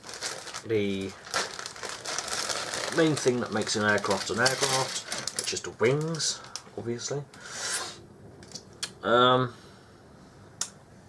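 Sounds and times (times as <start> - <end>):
plastic bag crinkling: 0.0 - 6.7.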